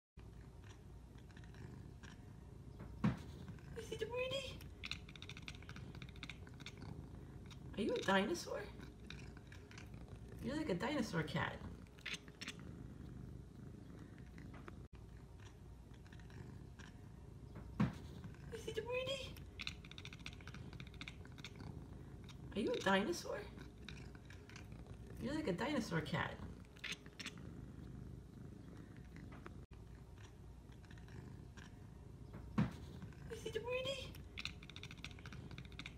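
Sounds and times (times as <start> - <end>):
cat making rough purring rumble: 0.2 - 35.9.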